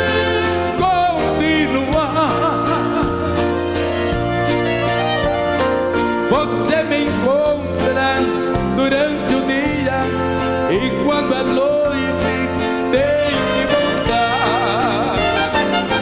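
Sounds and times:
live band music with sliding melody: 0:00.0 - 0:16.0.

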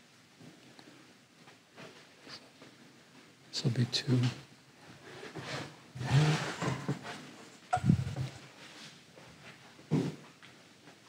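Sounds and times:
boards sliding on a table: 0:05.1 - 0:07.3.

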